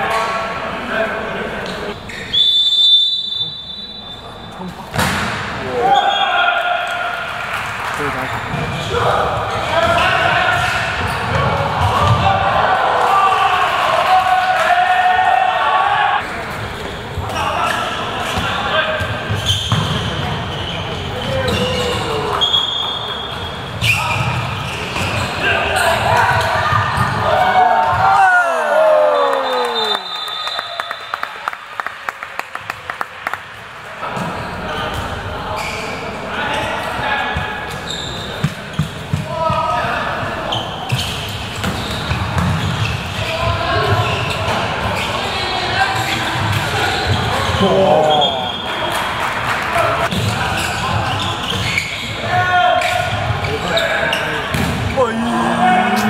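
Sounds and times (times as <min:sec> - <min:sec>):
handball bouncing on indoor court: 0:08.5 - 0:12.4, 0:18.3 - 0:20.5, 0:37.4 - 0:39.8, 0:40.9 - 0:45.1, 0:50.0 - 0:53.6, 0:54.5 - 0:55.2
people shouting: 0:54.9 - 0:56.0.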